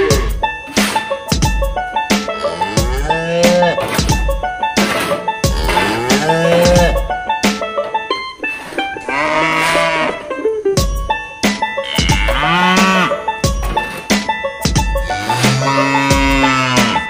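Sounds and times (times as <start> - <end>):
cattle mooing: 0.0 - 0.4, 2.2 - 4.0, 5.4 - 7.2, 8.9 - 10.3, 11.8 - 14.1, 15.0 - 17.0
background music with steady beat: 0.0 - 17.0.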